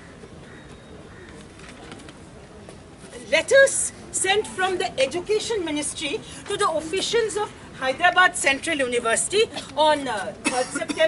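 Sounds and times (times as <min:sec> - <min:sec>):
faint open-air audience: 0:00.0 - 0:11.0.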